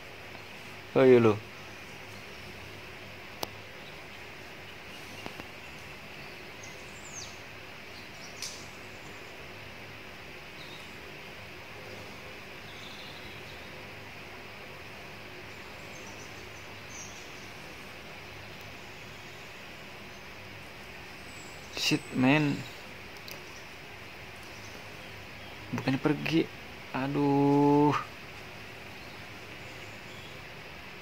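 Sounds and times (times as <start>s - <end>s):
forest ambience: 0.0s - 31.0s
faint bird chirps: 3.5s - 9.6s, 10.5s - 11.2s, 11.8s - 14.0s, 15.3s - 28.1s, 28.7s - 30.6s.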